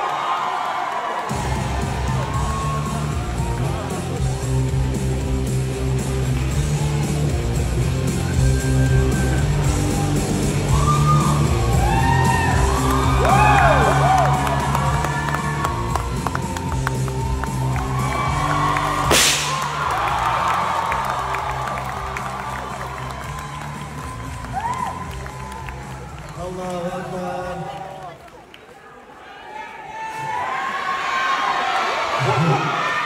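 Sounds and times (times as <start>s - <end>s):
crowd cheering and whooping: 0.0s - 5.4s, 6.4s - 28.4s, 29.2s - 33.0s
band music with bass line: 1.3s - 26.0s
short blast: 19.1s - 19.7s.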